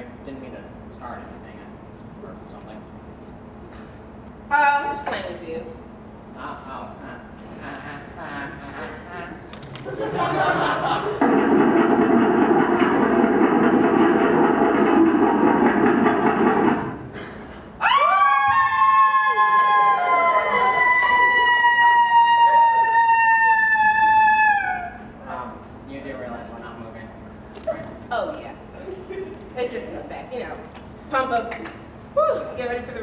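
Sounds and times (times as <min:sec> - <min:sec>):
loud dense noise: 0:09.5 - 0:25.3.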